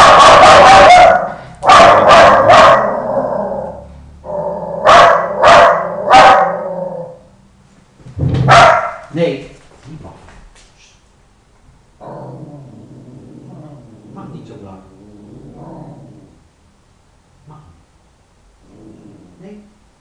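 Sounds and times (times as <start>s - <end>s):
dog barking loudly: 0.0s - 3.3s, 4.8s - 6.7s, 8.4s - 9.1s.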